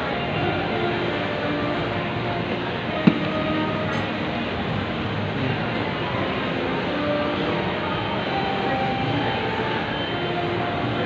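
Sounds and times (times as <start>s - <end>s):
hubbub of busy indoor space: 0.0s - 11.0s.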